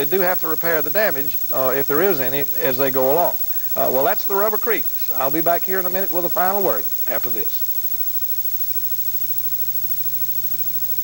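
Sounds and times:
constant hiss: 0.0 - 11.0
low electrical hum: 0.0 - 11.0.

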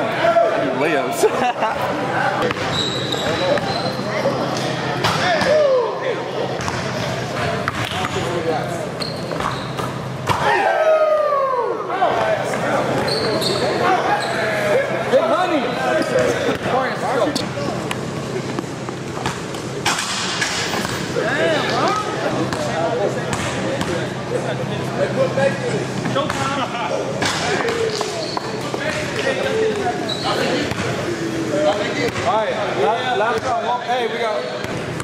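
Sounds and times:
sneakers squeaking: 2.4 - 5.6, 6.5 - 10.6, 12.2 - 24.2, 25.9 - 32.3, 33.3 - 35.0.

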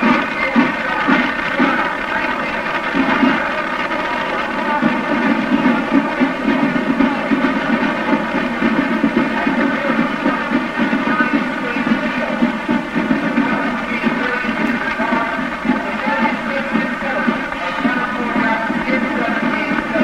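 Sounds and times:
rumbling parade noise: 0.0 - 20.0.

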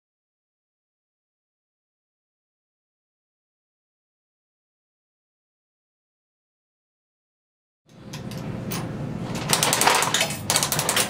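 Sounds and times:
vending machine coin mechanism ratcheting: 8.2 - 11.0.

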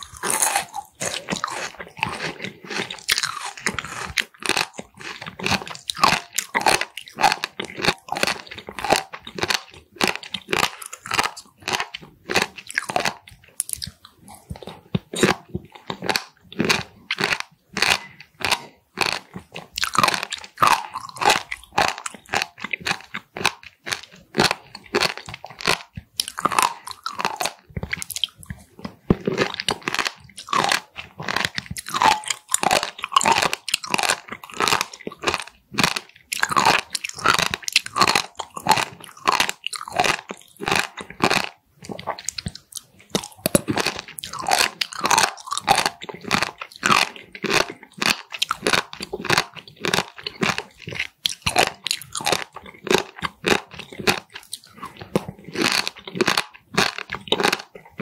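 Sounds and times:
chewing crunchy food: 0.0 - 58.0
wet mouth sounds: 0.0 - 58.0.

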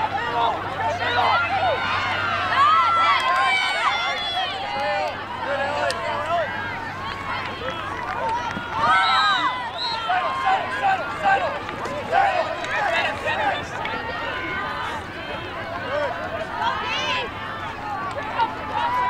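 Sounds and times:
crowd shouting and calling out: 0.0 - 19.0.

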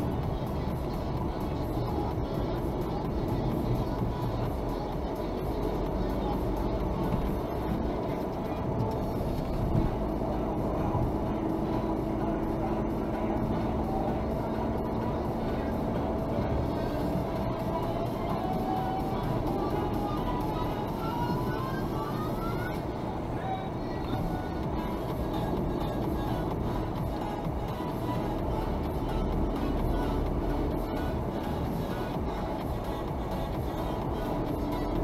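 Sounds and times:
engine and tyres rumbling: 0.0 - 35.0
music playing: 0.0 - 35.0.

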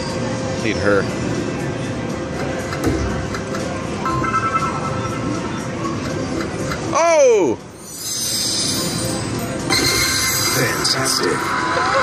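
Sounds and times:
slot machine music: 3.3 - 6.7, 7.8 - 11.2
slot machine spin sounds: 4.0 - 6.1, 7.8 - 12.0.

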